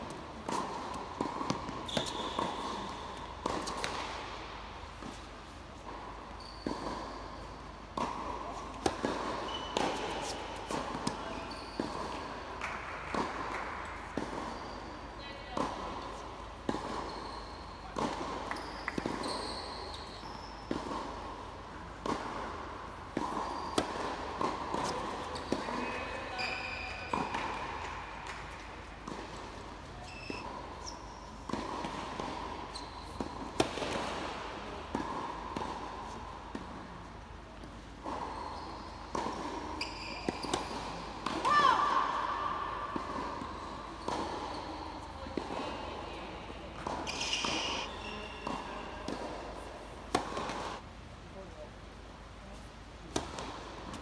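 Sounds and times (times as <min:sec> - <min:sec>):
tennis balls bouncing: 0:00.0 - 0:50.8, 0:53.1 - 0:54.0
rackets striking tennis balls: 0:00.0 - 0:50.9, 0:53.0 - 0:54.0.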